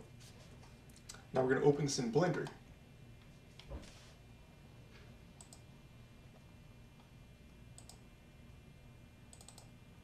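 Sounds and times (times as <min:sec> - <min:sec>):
computer mouse double-clicks: 0:05.4 - 0:05.6, 0:07.8 - 0:08.0, 0:09.3 - 0:09.7.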